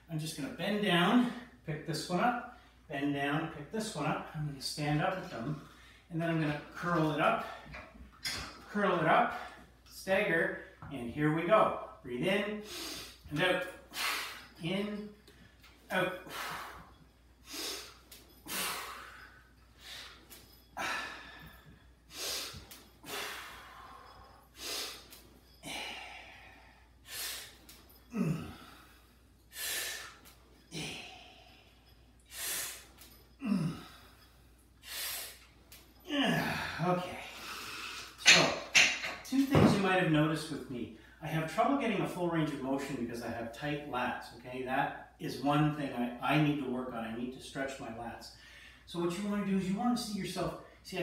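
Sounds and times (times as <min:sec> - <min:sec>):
man speaking: 0:00.1 - 0:07.5, 0:15.9 - 0:16.3
man breathing hard: 0:16.2 - 0:35.6.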